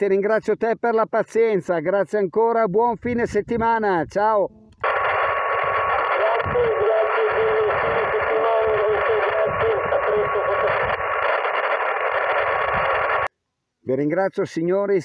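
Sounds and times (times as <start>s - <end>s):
radio static: 4.8s - 13.3s.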